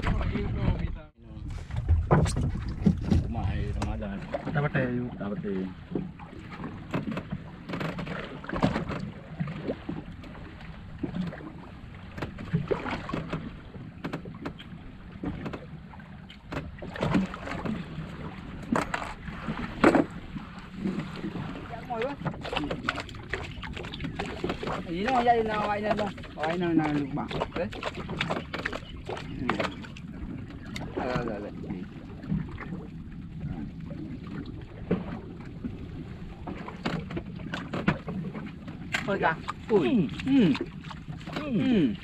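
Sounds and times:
knocks and clatter on board: 0.0s - 4.6s, 5.9s - 9.6s, 12.1s - 15.7s, 16.3s - 17.8s, 18.6s - 20.2s, 22.0s - 30.0s, 36.4s - 39.6s
water slapping against hull: 0.0s - 42.0s.

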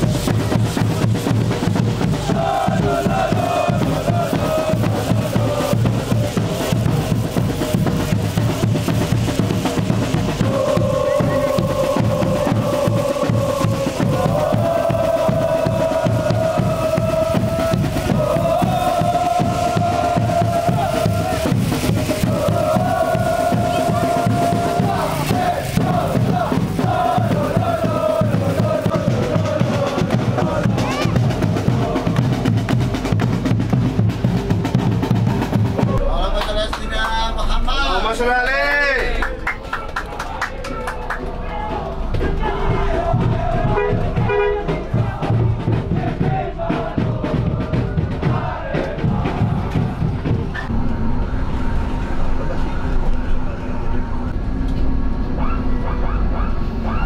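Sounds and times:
bass drums pounding: 0.0s - 52.4s
football supporters chanting: 0.0s - 54.4s.

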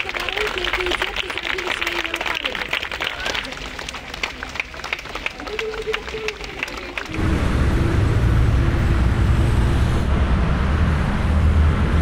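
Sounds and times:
hand clapping: 0.0s - 7.1s
city street traffic rumble: 0.0s - 12.0s.

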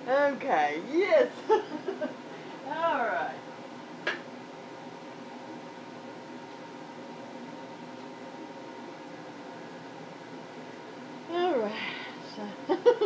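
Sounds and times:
faint whine: 0.0s - 13.0s
mechanical hum: 0.0s - 13.0s.

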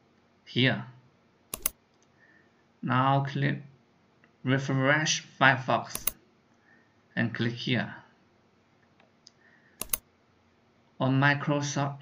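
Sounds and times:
computer mouse click: 1.5s - 2.1s, 5.9s - 6.2s, 9.8s - 10.0s.

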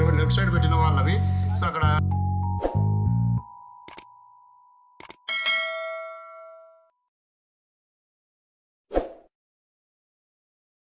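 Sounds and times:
mouse clicks: 3.9s - 4.1s, 5.0s - 5.2s
notification bell ding: 5.3s - 6.9s.

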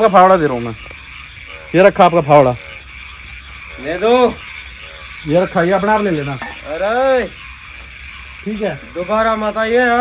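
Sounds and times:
frogs croaking: 0.0s - 10.0s.

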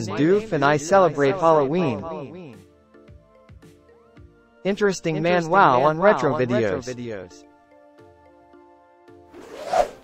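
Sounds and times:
whoosh sound effect: 9.4s - 10.0s.

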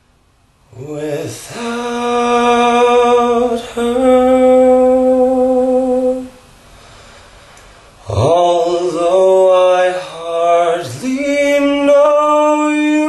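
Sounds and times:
man singing unaccompanied: 0.7s - 6.5s, 8.0s - 13.0s.

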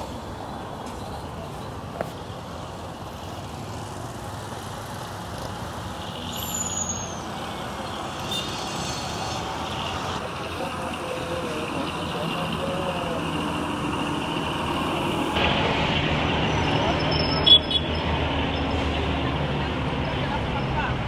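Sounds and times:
road traffic rumble: 0.0s - 21.0s
high falling squeal: 6.3s - 7.3s.

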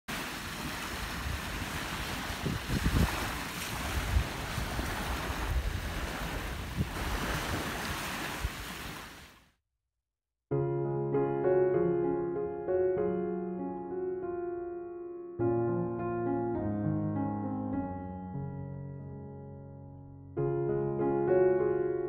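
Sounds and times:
sea waves washing onto beach: 0.1s - 9.4s
wind buffeting microphone: 0.6s - 8.7s.

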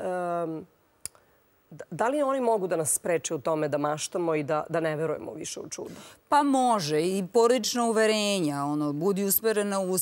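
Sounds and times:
woman speaking: 0.0s - 0.7s, 1.7s - 10.0s.

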